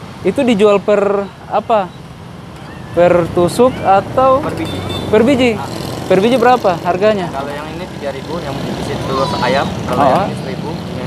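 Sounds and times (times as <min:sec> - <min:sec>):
street traffic hum: 0:00.0 - 0:11.0
people talking: 0:03.0 - 0:11.0.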